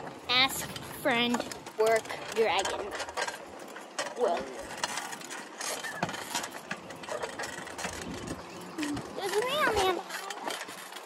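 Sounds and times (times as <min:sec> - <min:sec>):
bicycle rattling and clicking: 0:00.0 - 0:11.0
child's voice: 0:00.3 - 0:03.0, 0:08.8 - 0:10.6.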